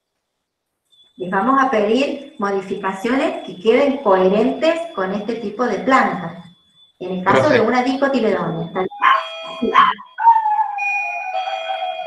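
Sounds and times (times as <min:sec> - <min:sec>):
dog whining: 0:09.0 - 0:12.0.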